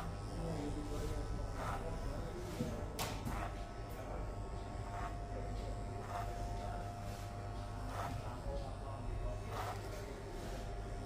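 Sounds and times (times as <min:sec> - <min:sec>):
electric hair clippers buzzing: 0:00.0 - 0:11.0
clippers brushing through hair: 0:00.8 - 0:03.7, 0:04.8 - 0:08.2, 0:09.4 - 0:11.0.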